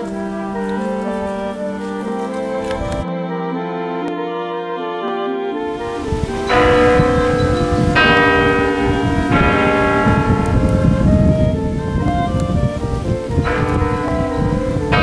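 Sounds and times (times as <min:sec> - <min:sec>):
church bells ringing: 0:00.0 - 0:03.0, 0:05.6 - 0:15.0.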